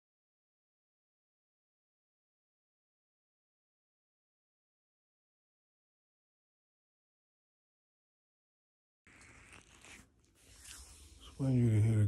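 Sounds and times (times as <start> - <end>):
faint rustling and handling: 9.1 - 11.8.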